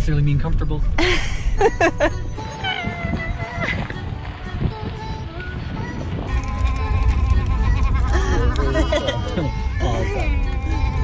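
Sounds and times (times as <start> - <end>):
background music: 0.0 - 11.0
low steady rumble: 0.0 - 11.0
wavering sung voice: 4.6 - 11.0.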